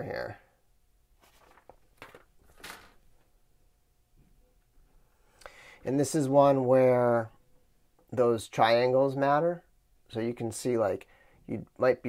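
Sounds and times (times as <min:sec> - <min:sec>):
plastic and paper rustling: 0:01.2 - 0:03.3.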